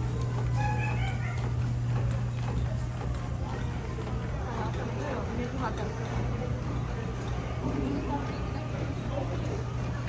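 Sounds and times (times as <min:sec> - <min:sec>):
faint chatter: 0:00.0 - 0:10.0
low machinery hum: 0:00.0 - 0:10.0.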